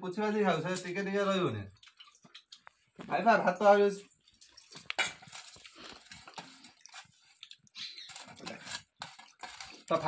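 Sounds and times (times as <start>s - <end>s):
eating and mouth noises: 1.3s - 3.1s, 4.8s - 10.0s
fingers scraping a steel bowl: 7.8s - 10.0s.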